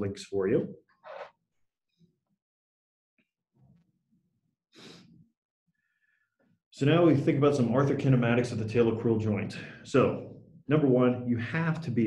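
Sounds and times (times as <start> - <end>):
breath into microphone: 4.7 - 6.5.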